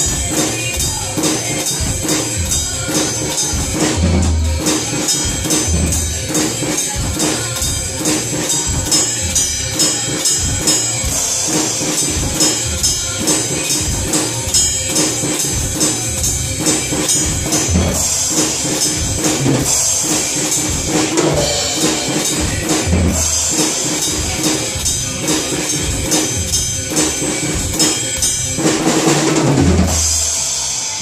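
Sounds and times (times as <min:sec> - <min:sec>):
drum kit playing steady beat: 0:00.0 - 0:31.0
recorded film song: 0:00.0 - 0:31.0.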